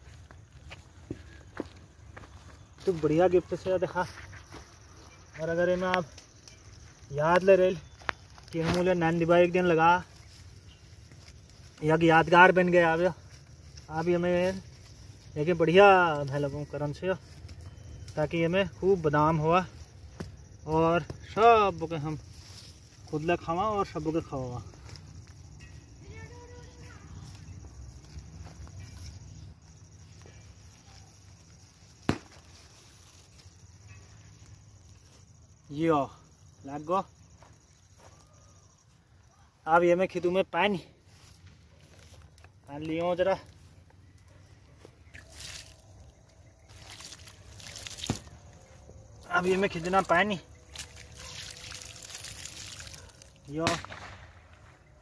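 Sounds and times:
hands patting dry soil: 0.0 - 25.5, 41.0 - 54.1
man talking: 2.8 - 4.2, 23.1 - 24.7, 49.2 - 50.5
hands pressing dry soil: 43.9 - 48.6.

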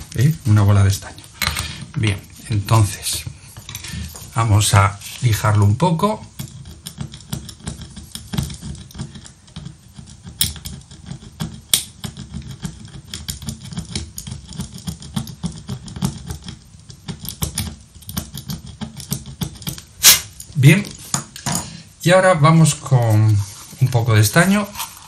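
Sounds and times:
screwdriver scraping circuit board: 1.6 - 20.4.

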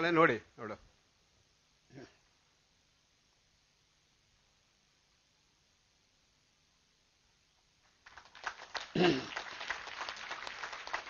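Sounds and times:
light scattered hand clapping: 7.8 - 11.0.

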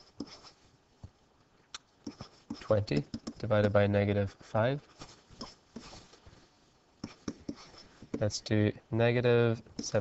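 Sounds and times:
pen writing on whiteboard: 0.0 - 0.6, 2.0 - 3.6, 4.9 - 6.1, 7.0 - 8.4, 9.6 - 10.0.

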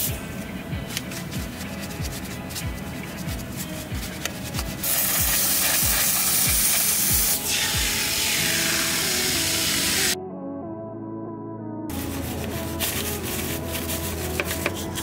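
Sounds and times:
background music with steady beat: 0.0 - 15.0
liquid spray hissing: 4.8 - 10.2.

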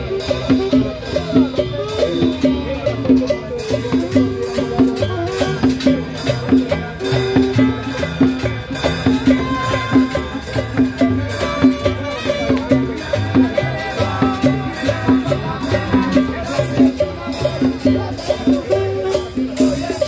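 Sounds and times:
latin dance band playing: 0.0 - 20.0.

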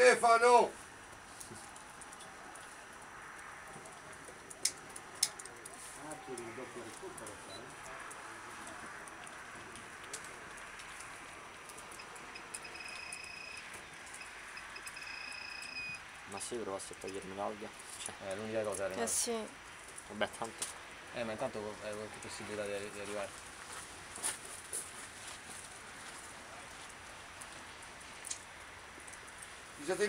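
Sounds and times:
distant voices: 0.0 - 30.0.

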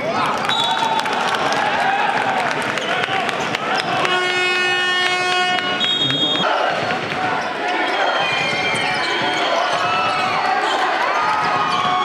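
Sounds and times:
crowd voices and shouts: 0.0 - 12.0
referee's whistle: 0.4 - 0.9, 4.6 - 6.5
electronic horn: 4.0 - 6.5.

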